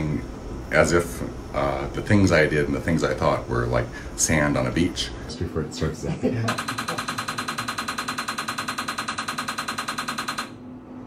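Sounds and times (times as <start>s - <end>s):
rapid loud clicks: 6.5s - 10.6s.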